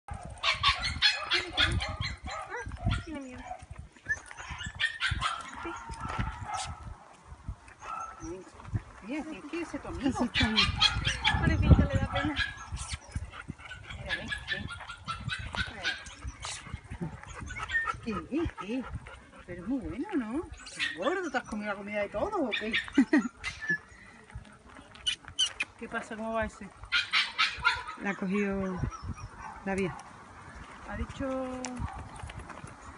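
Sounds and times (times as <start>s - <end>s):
dog barking: 0.1s - 3.6s, 4.6s - 6.9s, 10.2s - 12.8s, 27.0s - 28.2s, 29.4s - 30.1s
dog barking and yipping: 0.1s - 6.9s, 7.8s - 8.3s, 10.2s - 18.2s, 20.6s - 21.7s, 22.4s - 23.8s, 26.8s - 30.1s.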